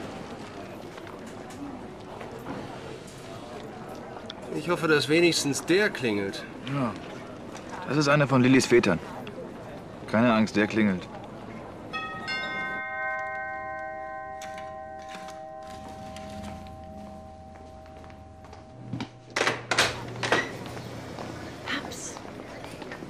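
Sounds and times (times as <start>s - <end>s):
doorbell chime: 11.9s - 19.4s.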